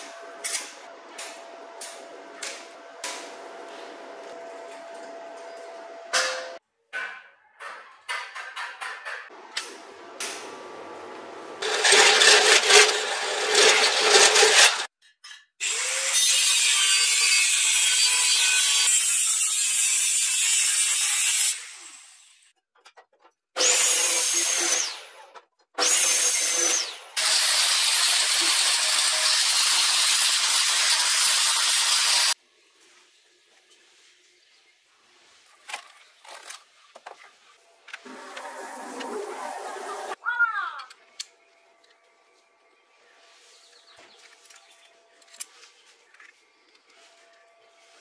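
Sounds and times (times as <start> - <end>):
power tool working steel: 10.9 - 14.9, 25.8 - 32.4, 38.0 - 40.2
crackling electric arc welding: 11.6 - 14.9, 25.9 - 32.4.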